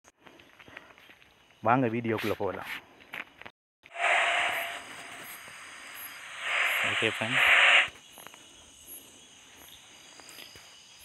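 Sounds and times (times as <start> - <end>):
insect chirring: 3.9 - 11.0.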